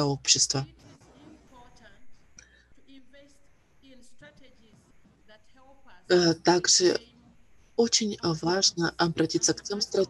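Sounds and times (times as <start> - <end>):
woman talking on video call: 0.0 - 0.7, 5.4 - 7.0, 7.8 - 10.0.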